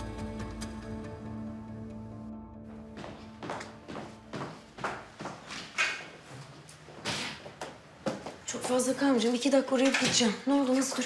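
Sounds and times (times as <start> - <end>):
background music: 0.0 - 5.2.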